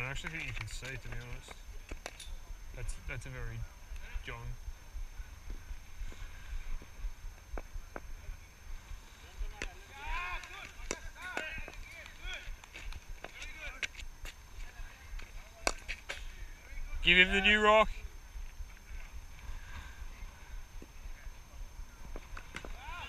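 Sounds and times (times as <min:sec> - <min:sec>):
cricket balls striking bats: 0:09.6 - 0:13.4.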